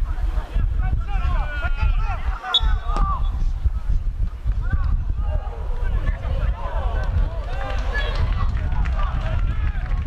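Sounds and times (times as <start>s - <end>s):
wind rumble on microphone: 0.0s - 10.0s
football kick: 2.8s - 3.4s.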